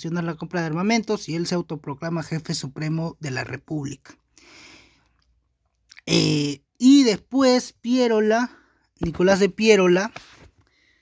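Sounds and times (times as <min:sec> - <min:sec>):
man speaking: 0:00.0 - 0:04.2, 0:05.9 - 0:10.2
man inhaling: 0:04.3 - 0:05.2.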